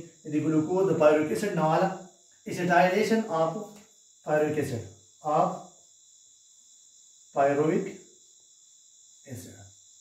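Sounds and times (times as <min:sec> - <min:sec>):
faint high-pitched hiss: 0:00.0 - 0:10.0
man speaking: 0:00.3 - 0:01.9, 0:02.5 - 0:03.7, 0:04.3 - 0:05.6, 0:07.4 - 0:07.9, 0:09.3 - 0:09.6.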